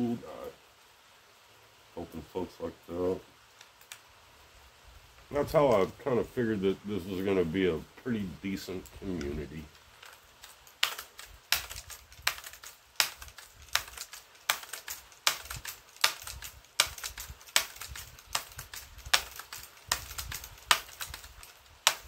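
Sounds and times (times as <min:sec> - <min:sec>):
sharp ticks: 0:09.2 - 0:22.0.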